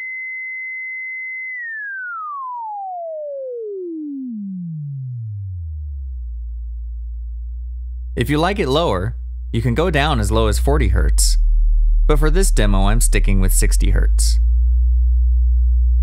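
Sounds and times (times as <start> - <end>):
synthesizer sine tone gliding down: 0.0 - 16.0.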